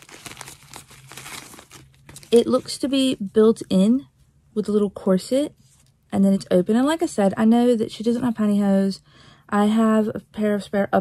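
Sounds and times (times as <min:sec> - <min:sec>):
plastic bag crinkling: 0:00.0 - 0:02.9.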